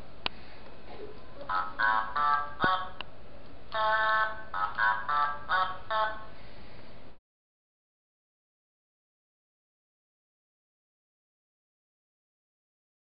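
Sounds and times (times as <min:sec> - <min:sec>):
toy electronic voice chattering: 0:01.4 - 0:03.0, 0:03.8 - 0:06.2.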